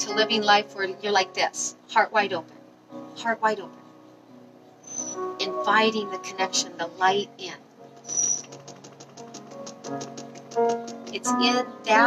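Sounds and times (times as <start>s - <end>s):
music with low sustained notes: 0.0s - 12.0s
light ticking beat: 8.0s - 11.6s.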